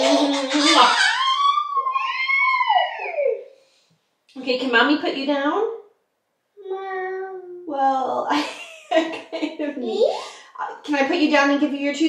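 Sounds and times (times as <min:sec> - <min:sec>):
toddler squealing: 0:00.3 - 0:03.5.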